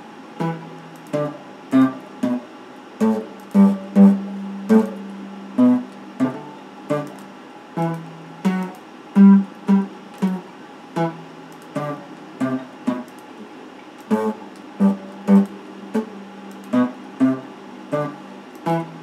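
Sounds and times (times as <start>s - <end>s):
electric guitar strummed chords: 0.0s - 13.2s, 14.0s - 19.0s.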